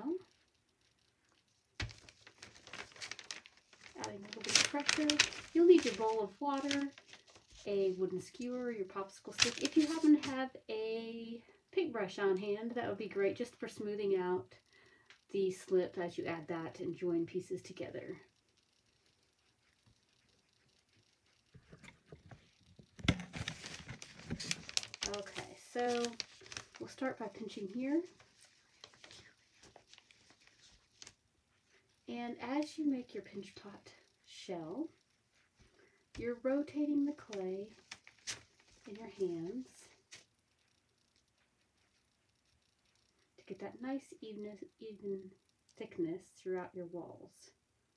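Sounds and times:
faint soft rustles: 0:00.0 - 0:10.5, 0:17.0 - 0:43.5
faint soft ticks of modelling clay: 0:17.1 - 0:23.0, 0:23.7 - 0:45.9.

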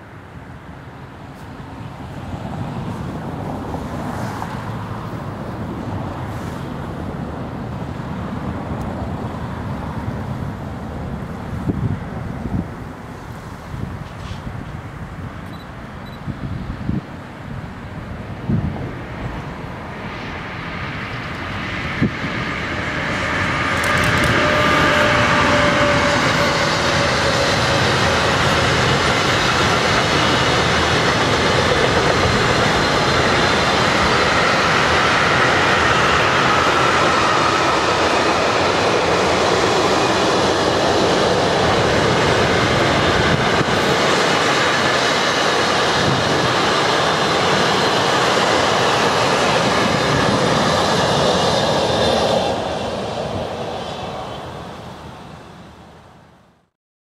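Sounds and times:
electric locomotive whine: 0:00.0 - 0:56.3.

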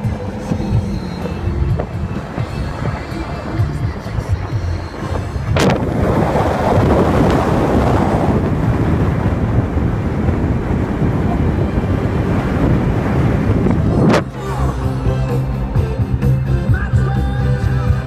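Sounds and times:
wind rushing over microphone: 0:00.0 - 0:16.8
car road noise: 0:00.0 - 0:18.0.

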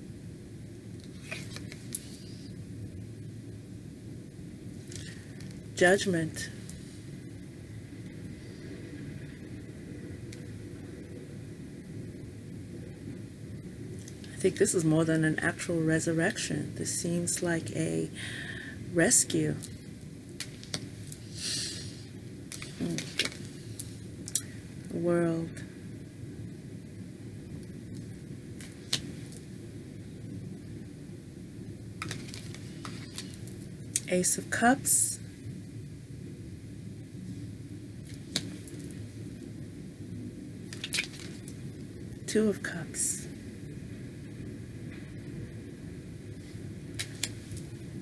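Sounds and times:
low room noise rumble: 0:00.0 - 0:48.0.

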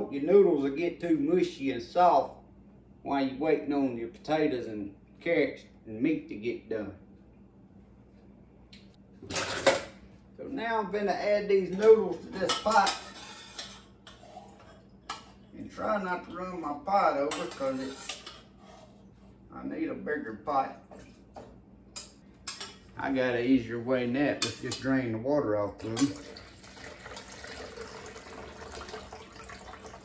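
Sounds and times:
hot water pouring into sink: 0:26.0 - 0:30.0.

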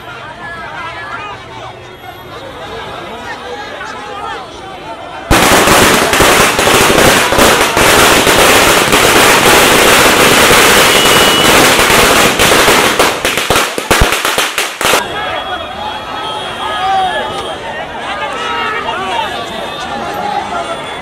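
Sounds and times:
firecrackers crackling: 0:05.3 - 0:15.1.

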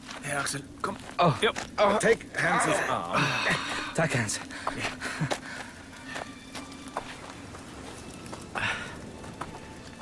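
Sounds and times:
slow footsteps on hard ground: 0:00.0 - 0:02.5, 0:03.5 - 0:10.0.

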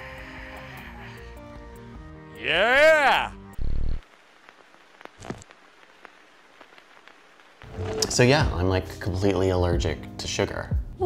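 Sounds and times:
faint crackling hiss: 0:02.8 - 0:09.6.

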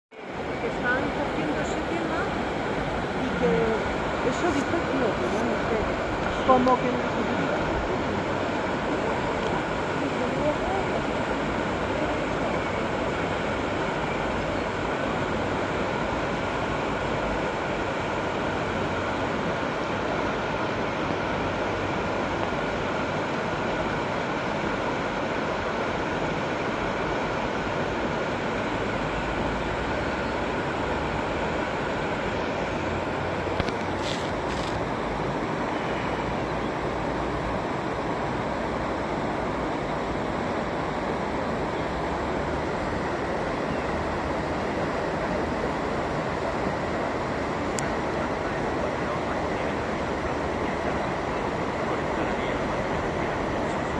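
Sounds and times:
river water rushing over weir: 0:00.1 - 0:53.9.

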